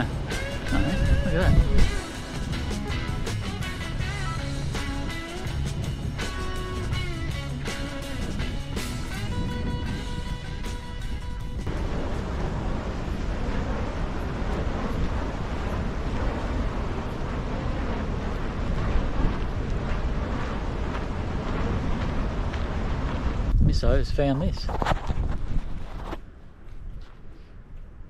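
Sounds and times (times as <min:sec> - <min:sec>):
guitar music: 0:00.0 - 0:11.7
strong wind buffeting microphone: 0:00.0 - 0:28.0.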